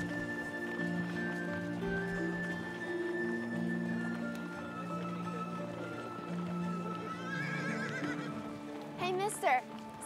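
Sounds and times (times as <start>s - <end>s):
film score music: 0.0s - 10.0s
horse whinnying: 7.0s - 8.5s.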